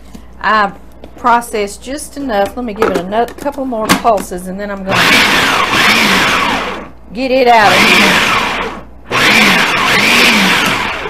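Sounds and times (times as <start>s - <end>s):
food processor chopping: 4.9s - 6.8s, 7.6s - 11.0s.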